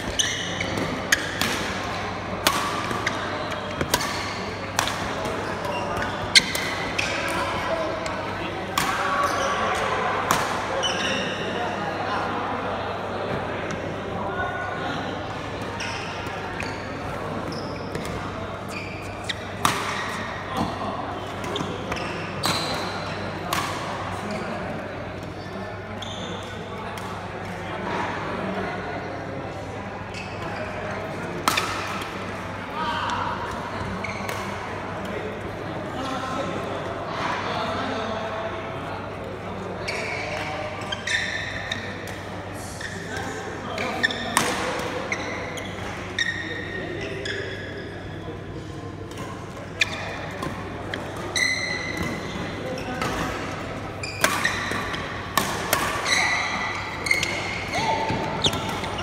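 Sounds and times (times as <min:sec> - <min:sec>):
background chatter: 0:00.0 - 0:59.0.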